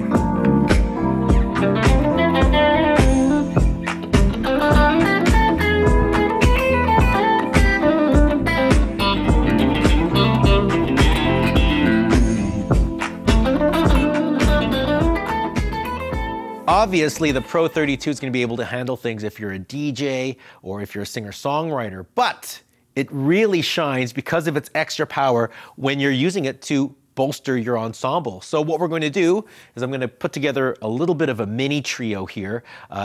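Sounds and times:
backing track drums and bass: 0.0s - 18.1s
electric guitar jamming: 0.0s - 18.1s.

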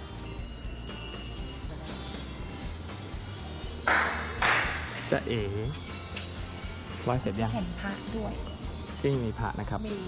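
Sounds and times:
sharp ringing strikes: 0.0s - 9.7s.

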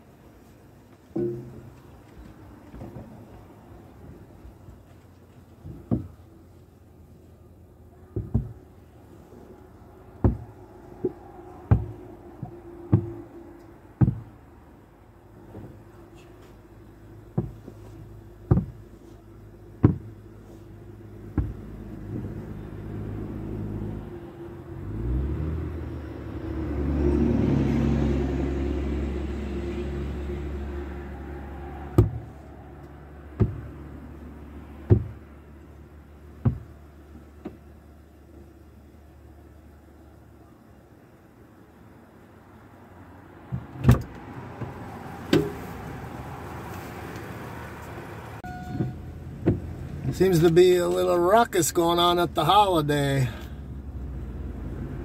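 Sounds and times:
sharp knocks: 10.2s - 13.2s, 14.0s - 14.4s, 21.3s - 21.6s, 33.4s - 33.7s, 34.9s - 35.2s, 36.4s - 36.8s
loud thump: 32.0s - 32.3s.

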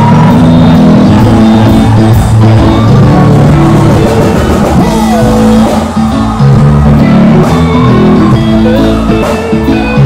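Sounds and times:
reggae band playing: 0.0s - 10.0s.

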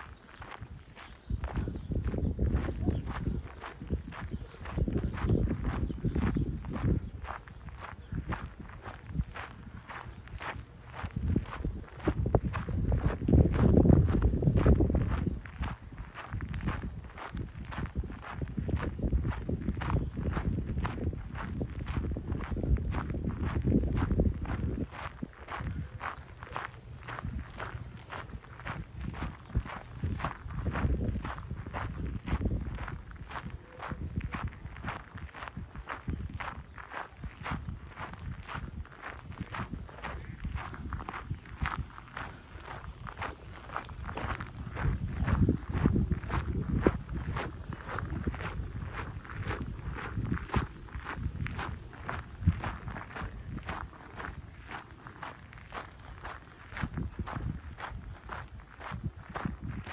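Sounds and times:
footsteps crunching on gravel: 0.1s - 59.9s.

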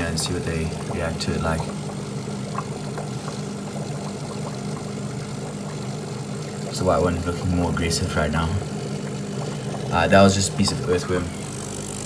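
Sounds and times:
aquarium filter motor humming: 0.0s - 12.0s.

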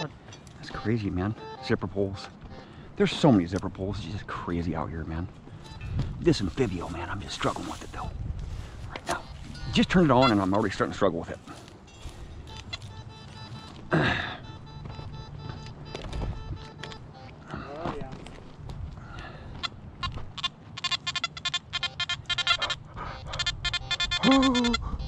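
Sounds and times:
metal detector beeping: 0.0s - 3.5s, 5.6s - 7.8s, 8.9s - 17.8s, 19.6s - 25.0s
faint detector tones: 0.0s - 3.6s, 5.5s - 8.1s, 8.8s - 18.2s
person sighing: 13.9s - 14.4s, 17.4s - 17.9s.

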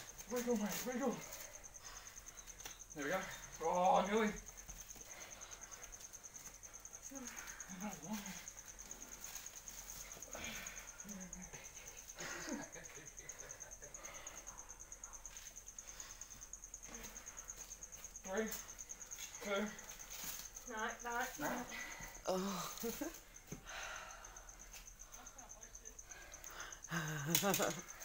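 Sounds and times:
insect trilling: 0.0s - 28.0s.

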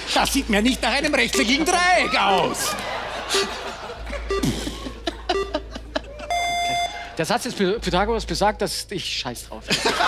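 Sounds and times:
longer high electronic tone: 4.3s - 7.1s
short electronic beep: 6.3s - 7.0s.

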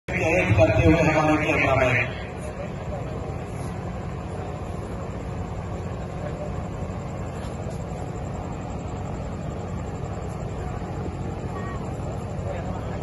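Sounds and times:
low crowd rumble: 0.1s - 13.0s.

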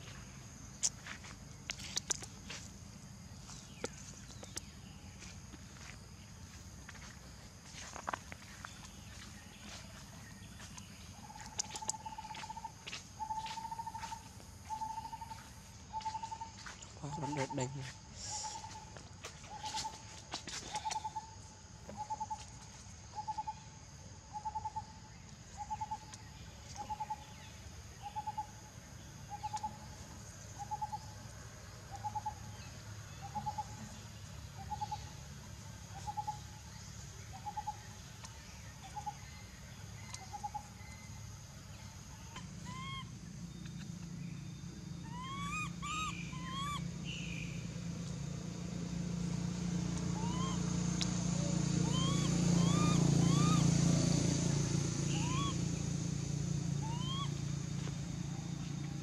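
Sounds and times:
low engine hum: 0.0s - 59.0s
short rising chirps: 55.1s - 55.6s.

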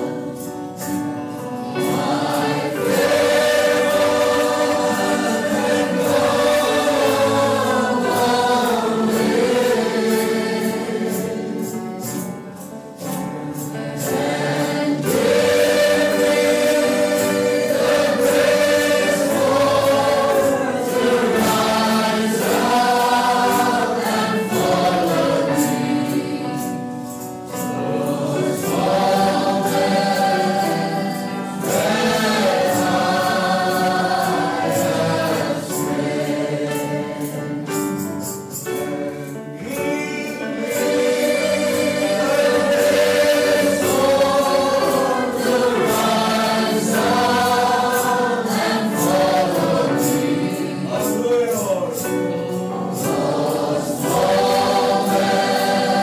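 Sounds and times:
choir singing gospel song: 0.0s - 56.0s.

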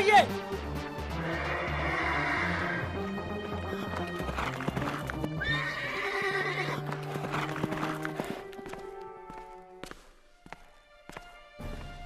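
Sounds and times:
background music: 0.0s - 12.0s
horse whinny: 1.1s - 3.0s, 5.4s - 7.4s
cartoon hoofbeats: 2.4s - 8.9s.

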